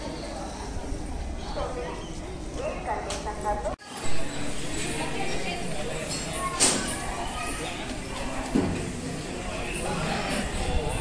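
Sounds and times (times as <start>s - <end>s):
indistinct talking of people: 0.0s - 11.0s.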